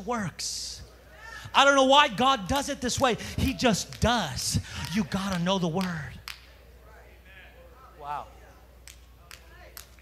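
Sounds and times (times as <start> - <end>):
man preaching: 0.0 - 6.3.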